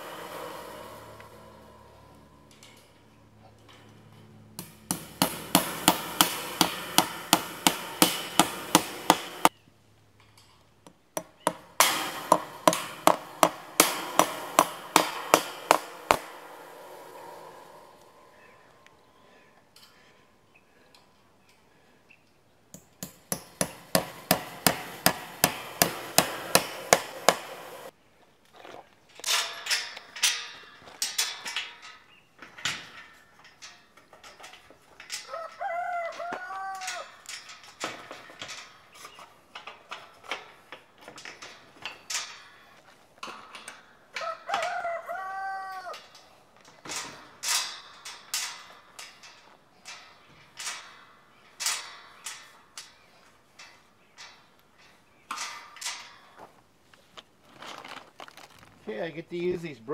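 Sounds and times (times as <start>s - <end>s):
wrench tapping metal: 4.6s - 9.5s, 11.2s - 16.6s, 22.7s - 27.9s
rooster crowing: 35.2s - 37.2s, 44.2s - 46.0s.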